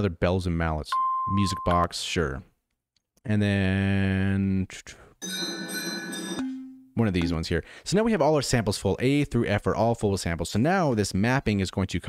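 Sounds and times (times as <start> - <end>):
bright bell tone: 5.2 - 7.4.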